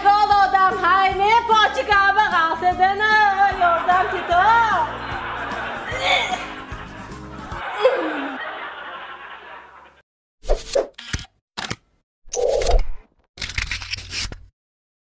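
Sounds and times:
background music: 0:00.0 - 0:09.3.

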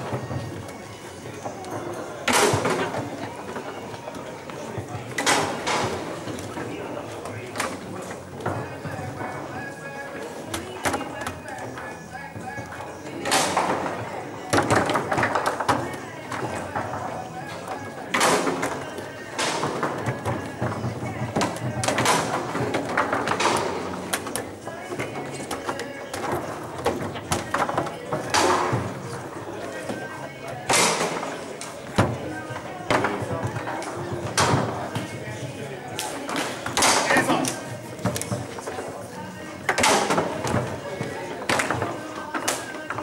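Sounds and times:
foosball clacks and knocks: 0:00.0 - 0:06.8, 0:10.5 - 0:35.2, 0:39.6 - 0:43.0
foosball rods banging: 0:00.0 - 0:09.6, 0:10.2 - 0:43.0.

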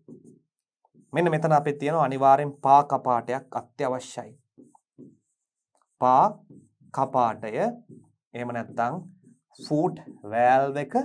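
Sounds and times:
pen scratching on whiteboard: 0:00.0 - 0:02.8, 0:04.4 - 0:11.0
man talking: 0:01.2 - 0:04.3, 0:06.0 - 0:06.4, 0:07.0 - 0:07.8, 0:08.4 - 0:11.0.

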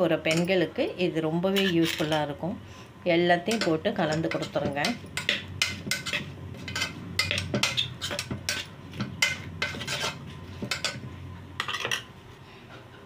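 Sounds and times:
spoon scraping steel pot: 0:03.5 - 0:11.0.

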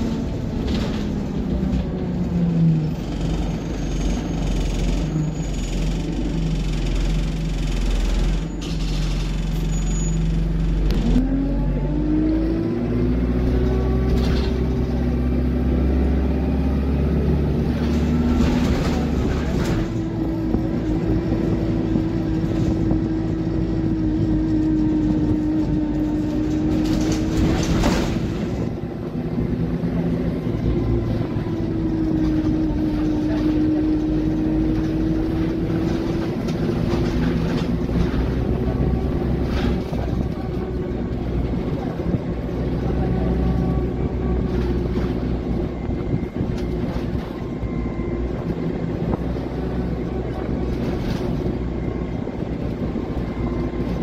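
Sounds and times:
diesel bus engine: 0:00.0 - 0:54.0.

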